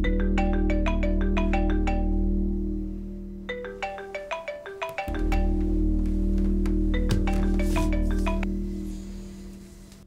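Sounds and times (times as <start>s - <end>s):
marimba ringtone melody: 0.0s - 2.6s, 3.4s - 9.3s.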